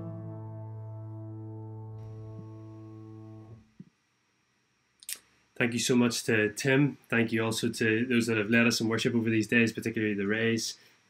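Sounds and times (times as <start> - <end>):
piano and bass guitar chord: 0.0 - 3.6.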